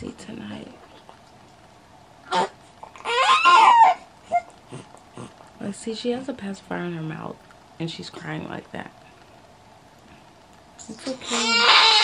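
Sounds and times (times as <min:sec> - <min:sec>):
baby crying: 0:02.2 - 0:04.5, 0:11.2 - 0:12.0.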